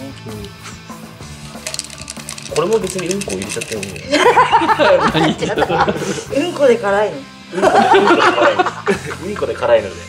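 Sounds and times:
laughter: 0:04.1 - 0:06.3, 0:07.5 - 0:09.6.

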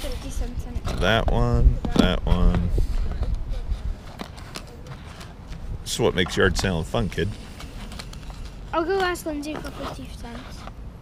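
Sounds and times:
wind buffeting microphone: 0:00.0 - 0:04.2, 0:05.4 - 0:07.4.

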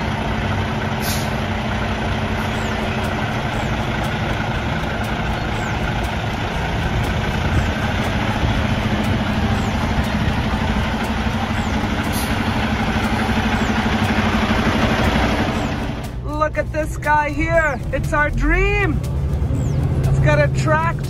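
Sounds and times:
truck diesel engine idling: 0:00.0 - 0:21.0.

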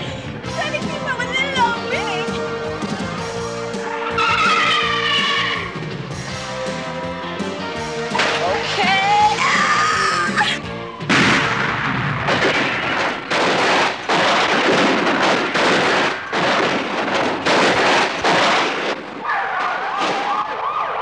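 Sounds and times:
police siren wailing: 0:03.9 - 0:05.8, 0:08.9 - 0:11.2.

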